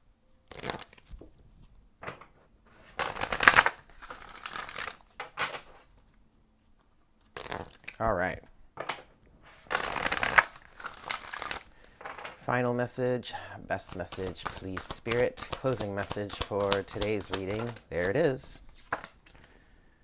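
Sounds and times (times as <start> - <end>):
card deck being shuffled: 0.5 - 1.2, 7.3 - 8.0, 9.7 - 11.6, 13.8 - 19.4.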